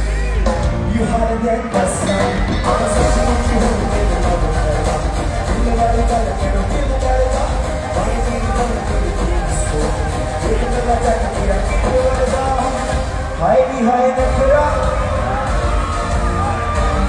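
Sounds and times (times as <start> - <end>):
live pop music over loudspeakers: 0.0 - 17.0
man singing: 0.0 - 17.0.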